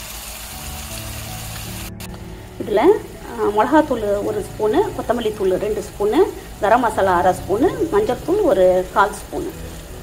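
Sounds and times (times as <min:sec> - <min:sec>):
woman talking: 0:02.6 - 0:09.6.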